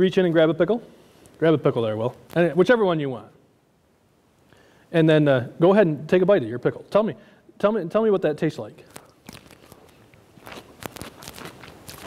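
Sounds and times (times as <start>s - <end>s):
pickle crunching: 8.9s - 12.0s.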